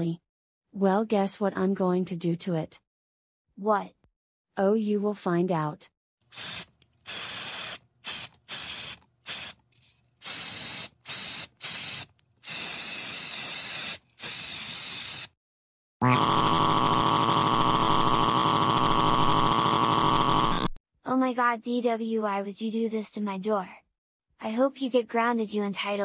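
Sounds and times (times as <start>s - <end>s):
spray paint can hissing: 6.3s - 9.6s, 10.2s - 15.4s.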